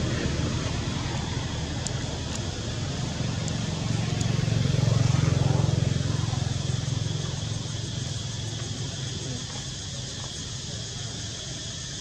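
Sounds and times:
passing vehicle engine hum: 0:00.0 - 0:12.0.

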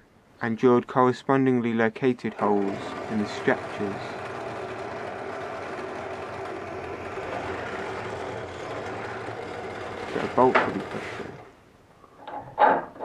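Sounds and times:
drill press motor whirring: 0:02.3 - 0:11.6.

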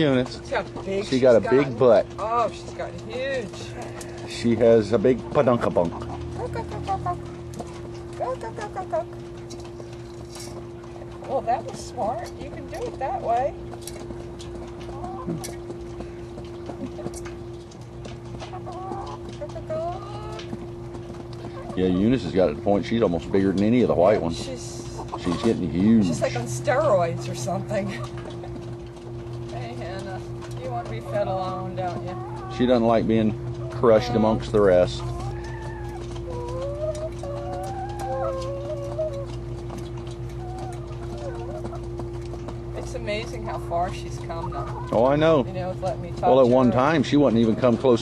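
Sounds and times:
hens clucking softly: 0:00.0 - 0:48.0
steady low hum: 0:00.0 - 0:48.0.

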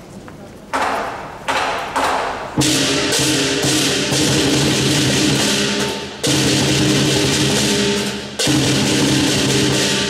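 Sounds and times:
drum beating: 0:00.7 - 0:10.0
crash cymbals clashing: 0:02.6 - 0:10.0.

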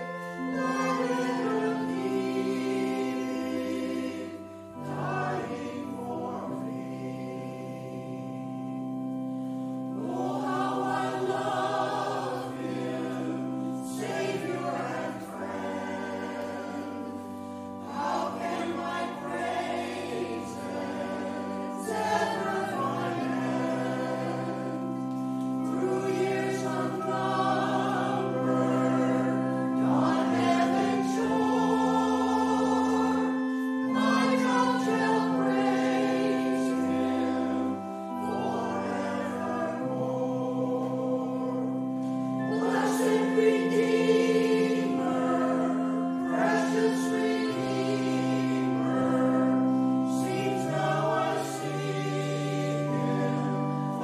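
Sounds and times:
church choir singing: 0:00.0 - 0:54.0
sustained accompaniment chords: 0:00.0 - 0:54.0.

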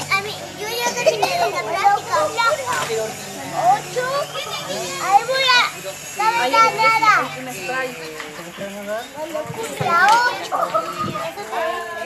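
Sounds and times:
high-pitched child's voice: 0:00.0 - 0:03.0, 0:03.6 - 0:07.3, 0:09.8 - 0:12.0
children and adults talking: 0:00.0 - 0:12.0.

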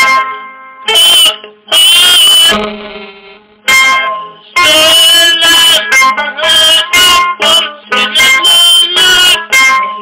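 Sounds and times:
plucked string instrument strummed: 0:00.0 - 0:10.0.

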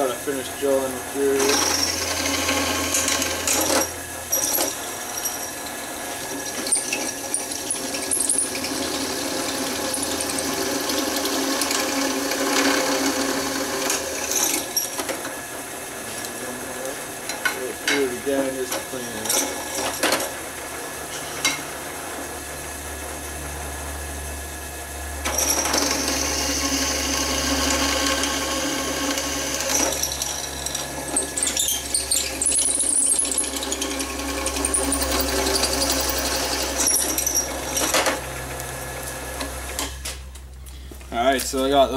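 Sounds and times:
drill press drilling metal: 0:00.4 - 0:23.9, 0:25.2 - 0:40.2.

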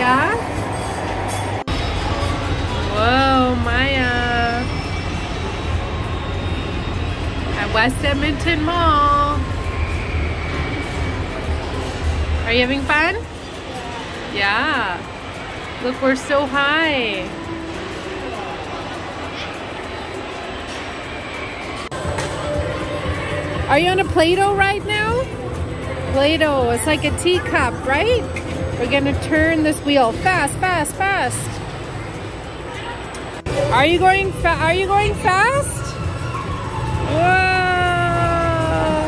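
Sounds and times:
amusement ride machinery rumble: 0:00.0 - 0:39.0.

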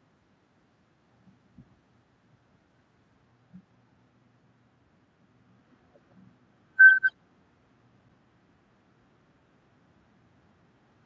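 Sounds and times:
high-pitched beep tones: 0:06.8 - 0:07.1.

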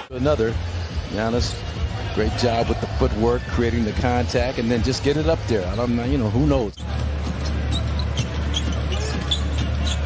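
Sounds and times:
crowd murmur: 0:06.8 - 0:10.0.

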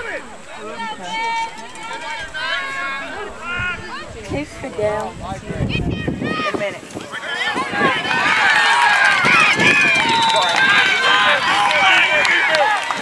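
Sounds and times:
crowd yelling and cheering: 0:00.0 - 0:13.0.

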